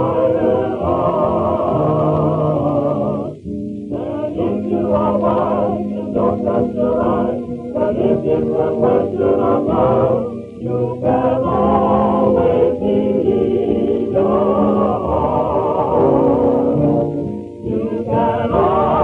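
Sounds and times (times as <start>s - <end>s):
chorus singing: 0.0s - 19.0s.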